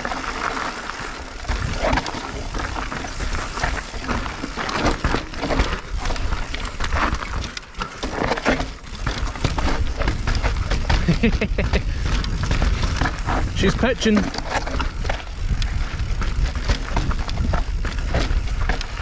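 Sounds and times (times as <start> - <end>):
bike knocking and rattling: 0.0 - 19.0
tyres crunching over gravel: 0.0 - 19.0
wind rumble on microphone: 1.4 - 7.6, 8.8 - 19.0.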